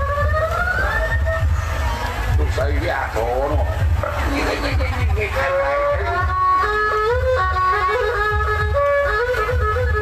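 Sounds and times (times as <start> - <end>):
low beat: 0.0 - 10.0.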